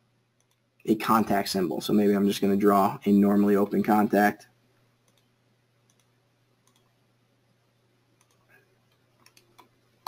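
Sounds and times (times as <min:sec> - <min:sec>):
faint low hum: 0:00.0 - 0:10.0
computer mouse clicks: 0:00.4 - 0:00.7, 0:05.0 - 0:07.0, 0:08.2 - 0:09.8.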